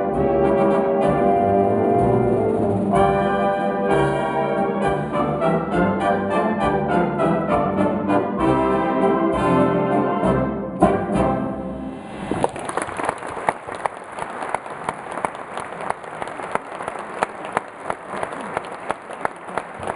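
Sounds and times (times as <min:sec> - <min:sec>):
wind band playing a waltz: 0:00.0 - 0:11.9
audience applauding: 0:12.3 - 0:19.9.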